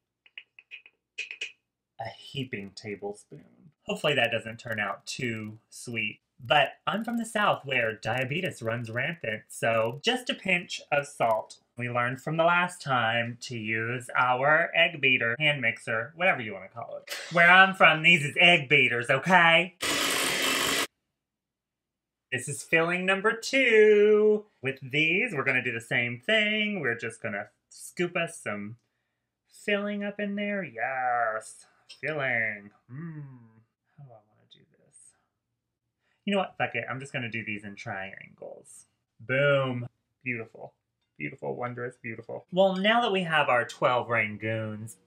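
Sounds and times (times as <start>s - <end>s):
electric hand mixer running: 19.8s - 20.9s.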